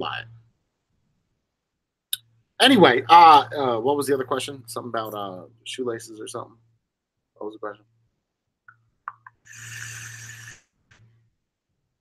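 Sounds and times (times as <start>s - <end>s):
airy hiss of vape draw: 9.4s - 10.7s.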